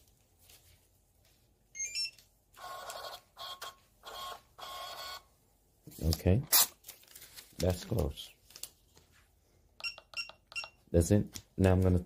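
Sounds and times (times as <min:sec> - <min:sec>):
card terminal beeping: 0:01.8 - 0:05.2.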